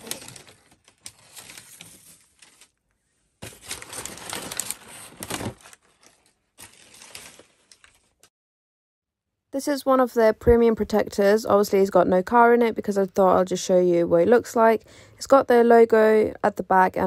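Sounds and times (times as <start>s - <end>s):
packing paper rustling: 0.0s - 8.3s.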